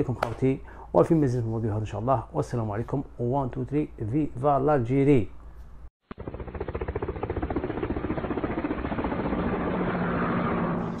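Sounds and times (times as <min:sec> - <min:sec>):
machine pulsing and humming: 0:06.1 - 0:11.0.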